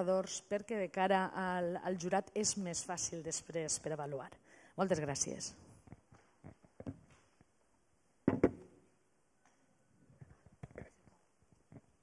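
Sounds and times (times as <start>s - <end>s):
sharp knocks: 8.2s - 8.7s.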